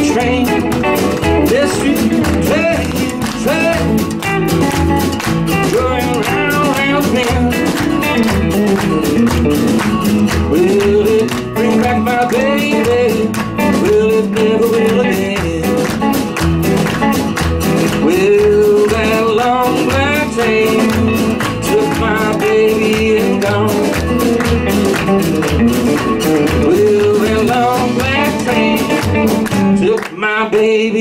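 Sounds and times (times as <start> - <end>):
electric guitar lead: 0.0 - 30.1
strummed acoustic guitar: 0.0 - 30.8
upright bass notes: 0.0 - 31.0.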